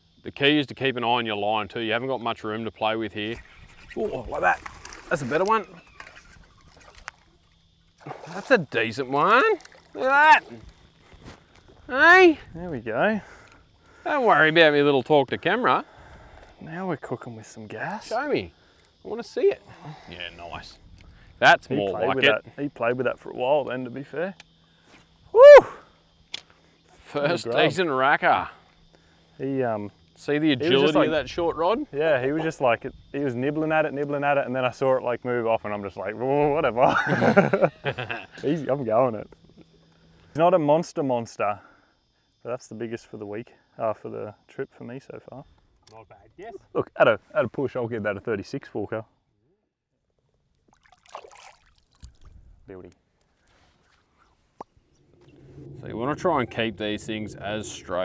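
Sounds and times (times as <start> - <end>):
man whooping: 10.0 - 10.6, 25.3 - 25.9.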